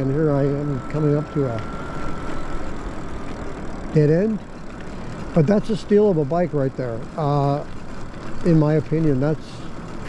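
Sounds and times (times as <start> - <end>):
faint high whine: 0.0 - 10.0.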